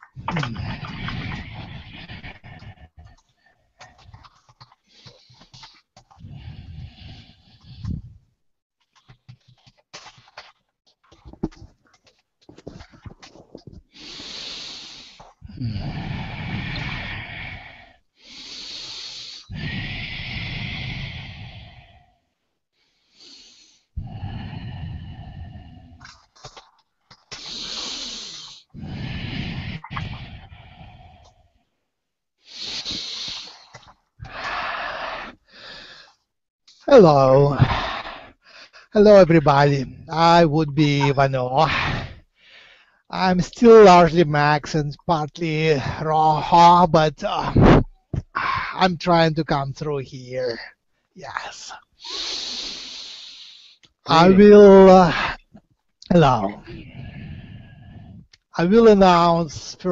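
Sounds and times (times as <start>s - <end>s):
man breathing heavily into microphone: 0.7s - 8.2s, 13.8s - 26.0s, 32.4s - 36.3s, 41.7s - 43.1s.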